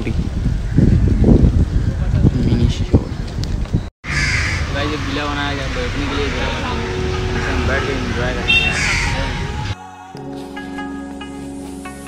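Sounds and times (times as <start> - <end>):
outdoor background noise: 0.0 - 9.7
crow cawing: 4.0 - 5.5, 7.1 - 9.8
man talking: 4.7 - 9.7.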